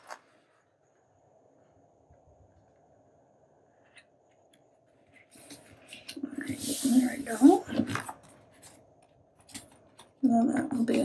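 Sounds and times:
paper being handled: 0:00.0 - 0:00.5.

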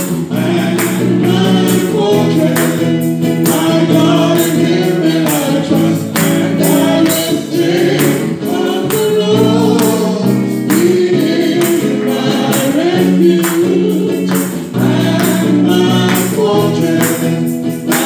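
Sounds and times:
electric guitar: 0:00.0 - 0:18.0
steady beat: 0:00.0 - 0:18.0.

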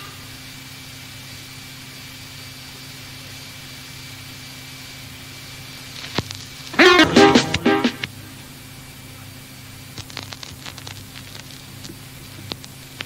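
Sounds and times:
tape hiss: 0:00.0 - 0:13.0
faint high whine: 0:06.6 - 0:09.4.

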